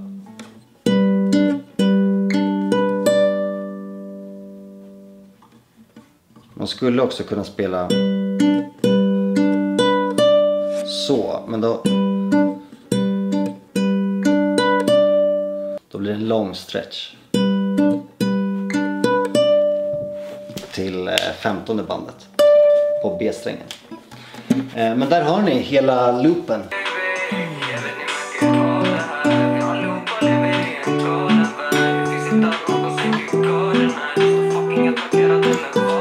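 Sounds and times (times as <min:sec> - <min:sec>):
acoustic guitar notes picked: 0:00.0 - 0:05.6, 0:07.6 - 0:15.8, 0:17.3 - 0:36.0.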